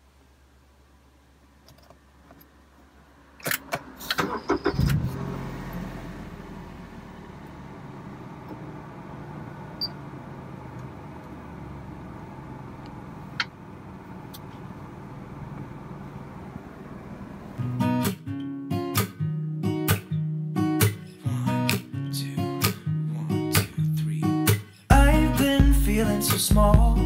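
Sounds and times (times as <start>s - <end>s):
car engine starting and idling: 1.5s - 17.7s.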